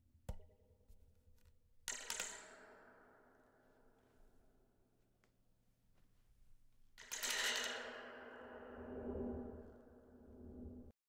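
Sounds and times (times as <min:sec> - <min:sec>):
steady low drone: 0:08.7 - 0:10.9.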